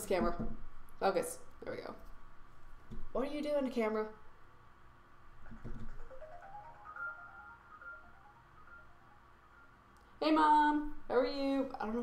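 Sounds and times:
faint electronic tune: 0:05.8 - 0:10.0.

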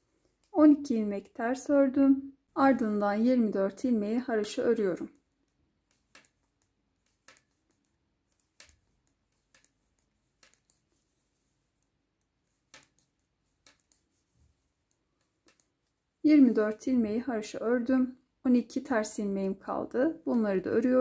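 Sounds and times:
knitting needles clicking: 0:03.8 - 0:17.5.

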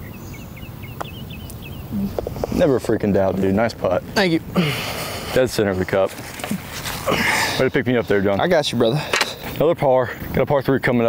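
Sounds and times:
bird chirping: 0:00.0 - 0:05.8
outdoor background noise: 0:00.0 - 0:11.0.

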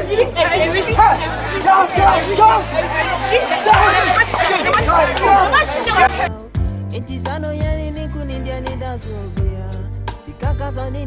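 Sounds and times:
people talking: 0:00.0 - 0:06.3
music with deep bass line: 0:00.0 - 0:11.0.

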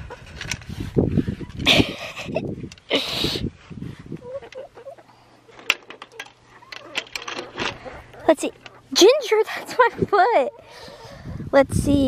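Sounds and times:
chickens clucking: 0:00.0 - 0:11.4.

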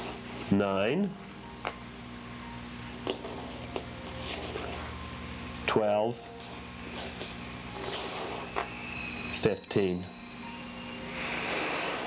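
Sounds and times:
low hum: 0:08.4 - 0:12.0.

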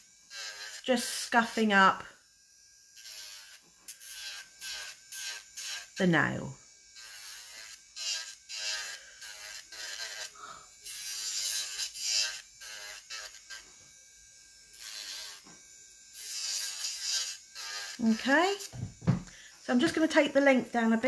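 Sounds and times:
electric nail drill sanding: 0:00.0 - 0:21.0.

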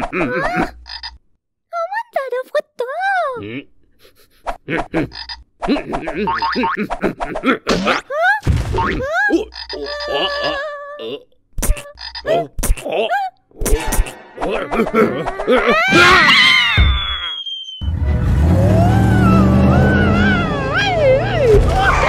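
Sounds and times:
cartoon frog croaking: 0:08.8 - 0:13.1.

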